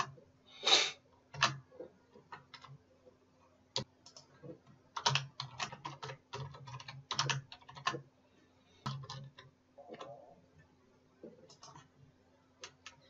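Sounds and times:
computer keyboard typing: 1.3s - 2.8s, 3.8s - 8.1s, 8.8s - 10.3s, 11.2s - 12.0s, 12.6s - 13.0s.

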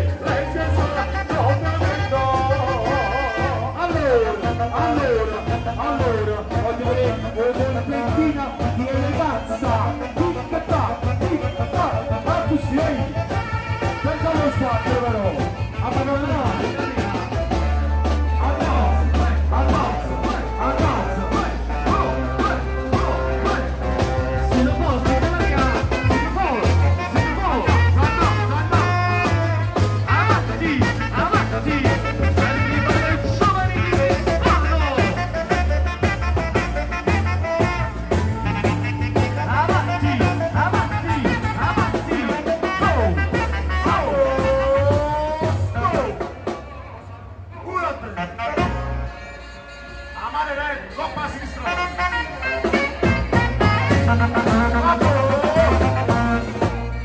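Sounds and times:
man singing: 0.0s - 46.4s, 47.5s - 57.0s
heavy bass line: 0.0s - 57.0s
live band music: 0.0s - 57.0s.

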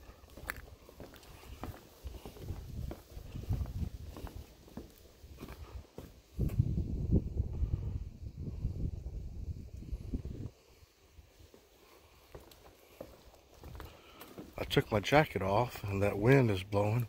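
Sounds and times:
footsteps on wooden boardwalk: 0.0s - 6.7s, 11.2s - 17.0s
wind buffeting microphone: 1.4s - 4.6s, 5.3s - 10.6s.

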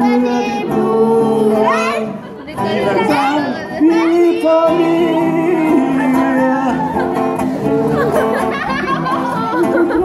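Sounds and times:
voices chattering: 1.4s - 10.0s.

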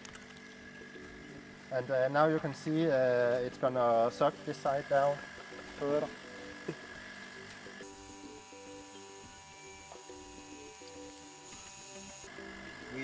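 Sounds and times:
electric vacuum pump humming: 0.0s - 13.0s.

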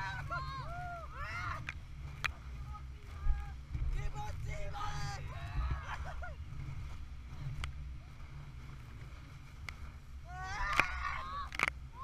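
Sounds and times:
people whooping and shrieking: 0.0s - 1.7s, 10.3s - 11.6s
wind rumble on microphone: 0.0s - 12.0s.

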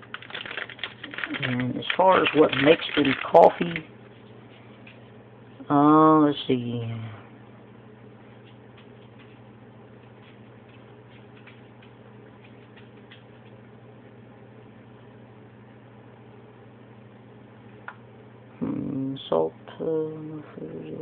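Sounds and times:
plastic wrapper crackling: 0.0s - 3.9s
low electrical hum: 0.0s - 21.0s.

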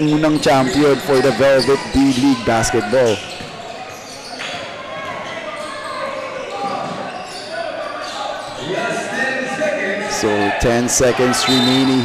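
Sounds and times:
people chattering and calling out: 0.0s - 12.0s.

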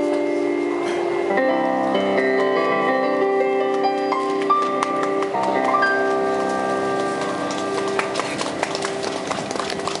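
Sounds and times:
keyboard chord ringing: 0.0s - 9.4s
audience clapping: 4.2s - 10.0s.

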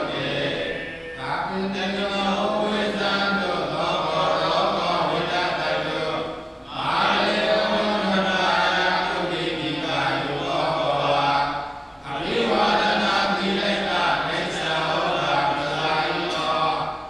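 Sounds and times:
amplified chanting voice: 0.0s - 17.0s
monks chanting together: 0.0s - 17.0s.

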